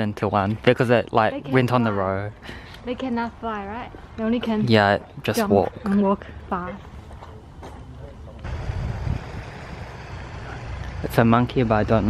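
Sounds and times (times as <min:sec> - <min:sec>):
steady low rumble: 0:08.4 - 0:12.0.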